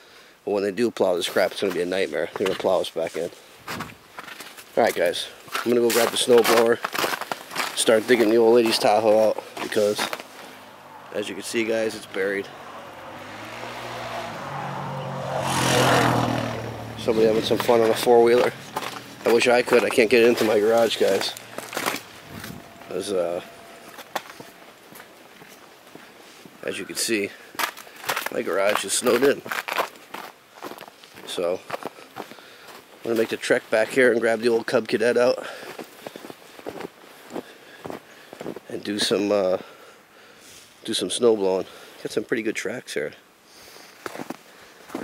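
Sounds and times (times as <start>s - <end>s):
footsteps crunching in snow: 1.3s - 14.4s, 16.4s - 33.4s, 35.6s - 39.2s, 44.0s - 45.0s
atv engine passing: 8.1s - 26.0s.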